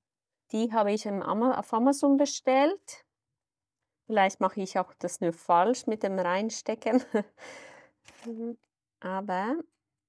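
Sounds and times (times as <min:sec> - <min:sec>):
woman speaking: 0:00.5 - 0:03.1, 0:04.1 - 0:07.3, 0:08.2 - 0:09.8.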